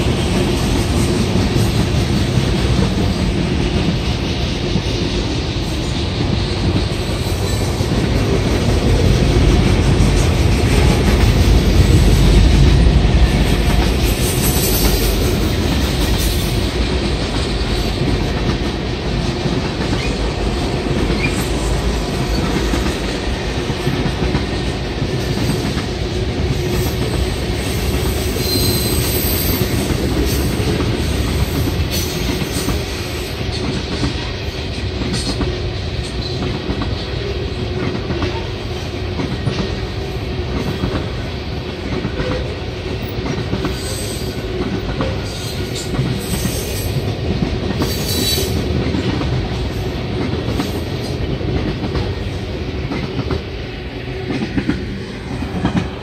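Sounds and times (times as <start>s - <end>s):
train wheels rumbling on rail: 0.0s - 56.0s
high wheel squeal: 28.2s - 29.6s.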